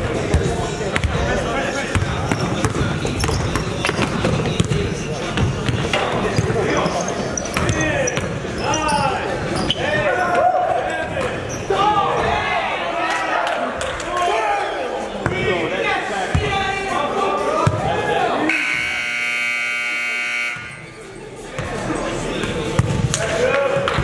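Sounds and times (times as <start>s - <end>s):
players calling out: 0.2s - 24.0s.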